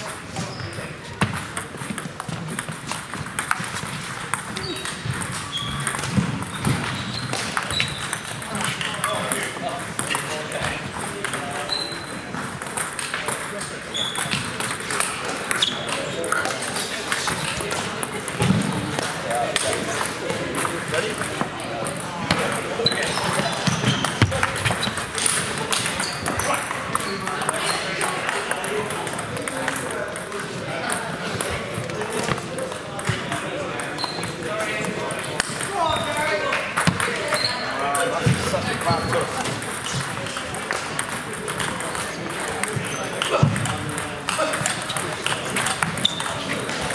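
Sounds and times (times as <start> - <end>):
indistinct chatter: 0.0 - 46.9
table tennis balls clicking: 0.0 - 46.9.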